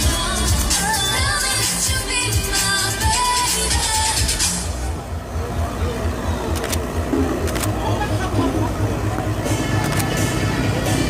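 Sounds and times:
low engine rumble: 0:00.0 - 0:11.0
voices: 0:00.0 - 0:11.0.

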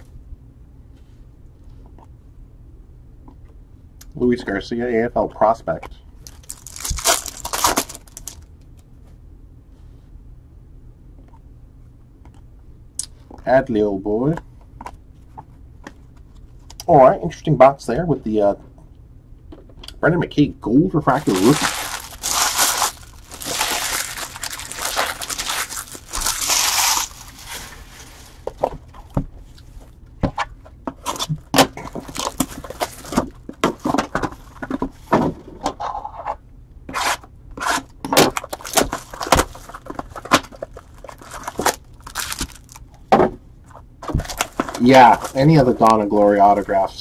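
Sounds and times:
foil wrapper crinkling and tearing: 0:06.2 - 0:08.5, 0:21.1 - 0:28.5, 0:31.1 - 0:33.4, 0:38.2 - 0:42.9, 0:44.2 - 0:46.7.

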